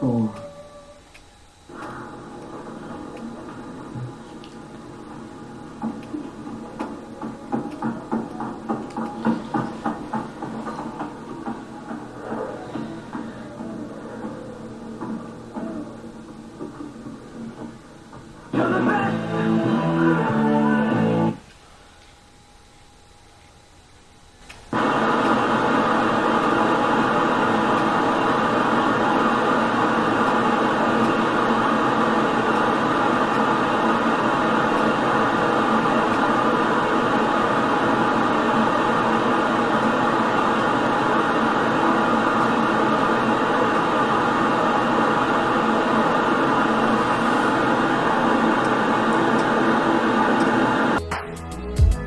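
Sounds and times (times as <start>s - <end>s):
tv static hiss: 0.0s - 52.0s.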